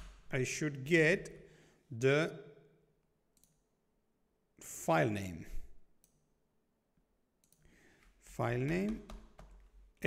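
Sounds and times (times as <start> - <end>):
computer keyboard typing: 8.6 - 9.8.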